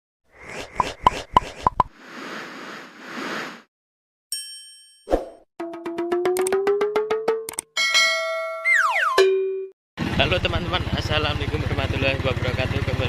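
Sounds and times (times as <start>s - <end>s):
bright ding: 4.3s - 5.0s.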